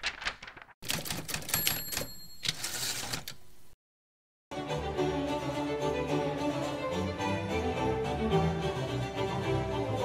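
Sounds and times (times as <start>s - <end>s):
typewriter keys clattering: 0.0s - 3.4s
typewriter bell ringing: 1.3s - 3.3s.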